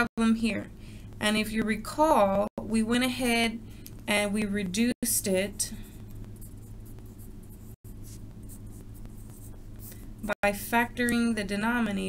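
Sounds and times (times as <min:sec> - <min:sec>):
steady low hum: 0:00.0 - 0:12.0
pencil scratching on paper: 0:05.4 - 0:10.0.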